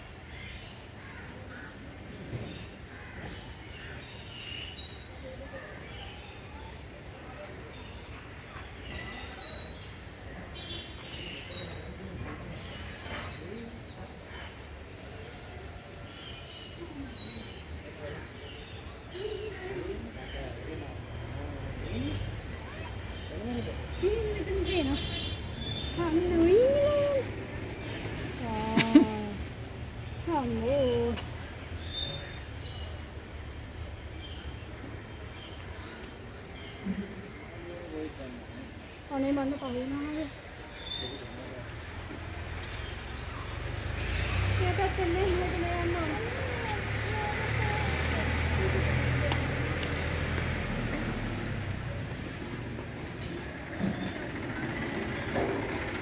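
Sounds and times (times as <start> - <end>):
indistinct voices talking: 16.8 - 37.7, 38.4 - 56.0.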